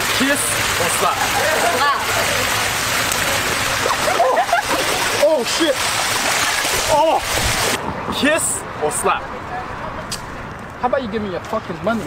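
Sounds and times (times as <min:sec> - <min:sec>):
fountain water splashing: 0:00.0 - 0:07.8.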